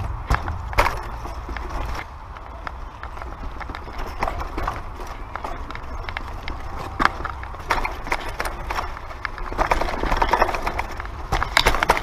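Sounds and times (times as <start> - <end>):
bike rattling over rocks: 0.0 - 12.0.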